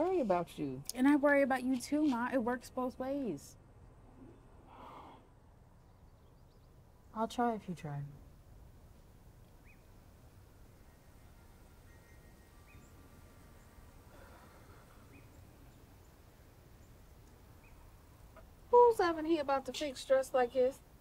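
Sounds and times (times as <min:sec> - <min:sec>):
faint outdoor ambience: 0:00.0 - 0:21.0
faint bird chirps: 0:09.0 - 0:10.0, 0:10.7 - 0:18.5.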